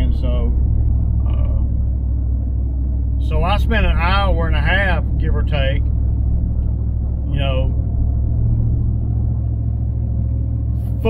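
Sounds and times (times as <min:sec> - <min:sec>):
road and engine rumble in cab: 0:00.0 - 0:11.0.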